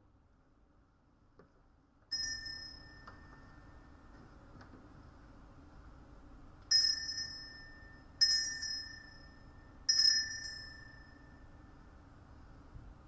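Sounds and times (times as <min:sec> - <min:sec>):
small altar bell ringing: 0:02.1 - 0:04.2, 0:06.7 - 0:12.2.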